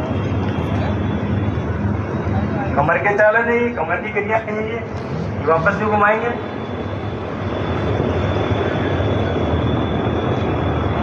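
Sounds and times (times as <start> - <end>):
rushing outdoor noise: 0.0 - 11.0
faint thin high whine: 3.7 - 11.0.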